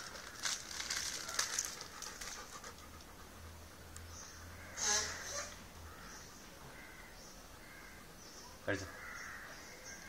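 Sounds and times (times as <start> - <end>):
dog panting: 1.4 - 4.0.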